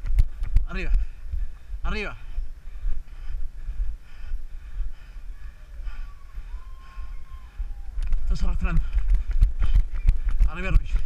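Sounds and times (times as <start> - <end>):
running footsteps on asphalt: 0.0 - 11.0.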